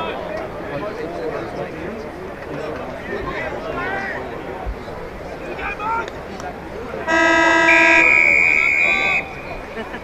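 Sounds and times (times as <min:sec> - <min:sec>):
loud horn blast: 0:07.1 - 0:09.3.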